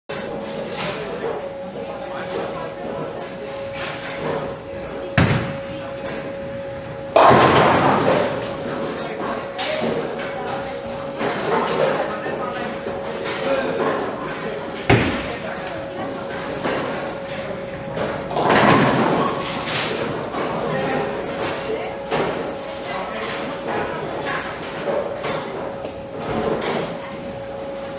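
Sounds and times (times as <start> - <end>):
steady hum of bowling alley: 0.1 - 27.9
bowling pins clattering: 7.0 - 9.1, 12.8 - 22.6
chatter: 8.3 - 18.4.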